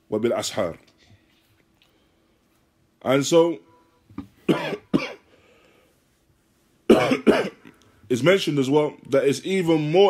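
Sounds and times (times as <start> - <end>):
man coughing: 4.5 - 5.3, 6.9 - 7.7.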